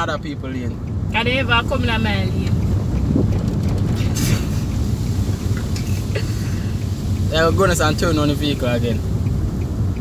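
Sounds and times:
car cabin road and engine rumble: 0:00.0 - 0:10.0
wind buffeting microphone: 0:02.3 - 0:04.4.

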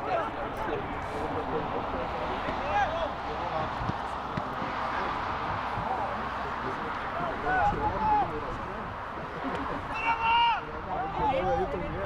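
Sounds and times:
short shouts: 0:09.9 - 0:11.2.

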